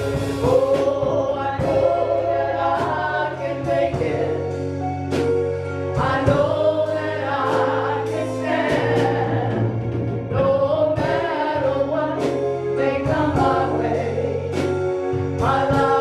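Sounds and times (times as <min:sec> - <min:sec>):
drum kit cymbal and drum hits: 0:00.0 - 0:11.4
electronic keyboard bass notes: 0:00.0 - 0:16.0.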